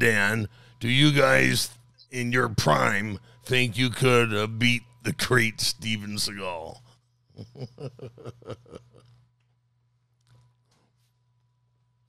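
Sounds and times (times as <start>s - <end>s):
man chuckling quietly: 7.4s - 9.2s.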